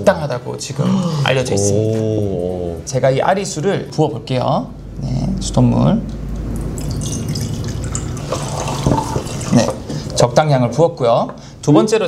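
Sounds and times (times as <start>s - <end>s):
water pouring into glass: 6.5s - 9.9s.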